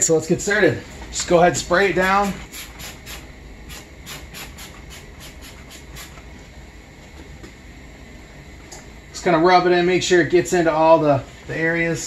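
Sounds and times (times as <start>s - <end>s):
spray bottle hissing: 2.5s - 6.2s.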